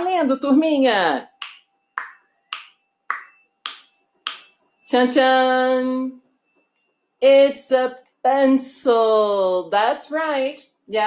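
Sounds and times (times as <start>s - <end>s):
countdown ticking clicks: 1.4s - 4.6s.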